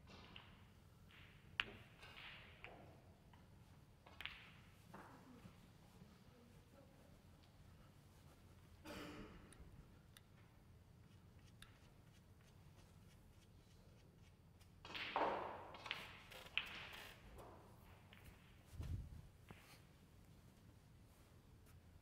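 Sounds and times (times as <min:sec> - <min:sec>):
snooker balls clicking: 0:00.0 - 0:05.3, 0:14.6 - 0:18.7.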